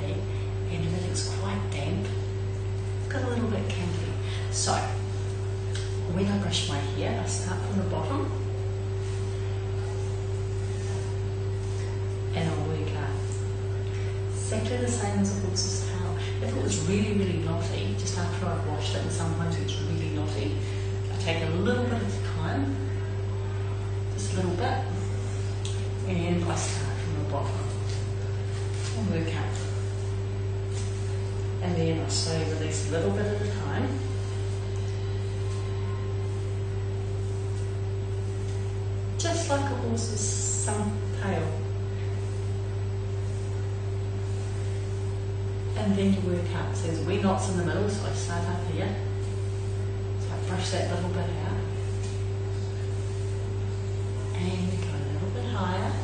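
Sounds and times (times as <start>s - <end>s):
low electrical hum: 0.0s - 56.0s.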